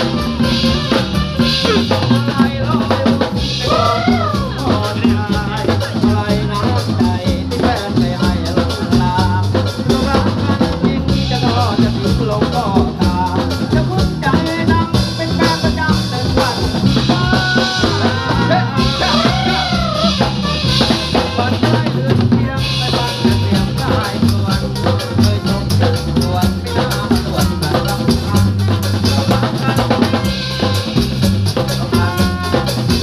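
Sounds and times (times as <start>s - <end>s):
live dance band playing: 0.0s - 33.0s.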